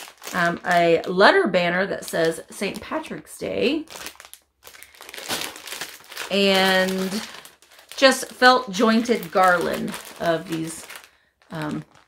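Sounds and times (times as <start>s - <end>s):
plastic bag crinkling: 0.0s - 1.3s, 3.6s - 12.0s.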